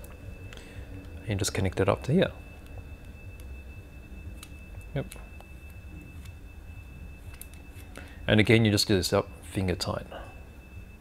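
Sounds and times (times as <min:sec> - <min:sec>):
faint high whine: 0:00.0 - 0:11.0
low hum: 0:00.0 - 0:11.0.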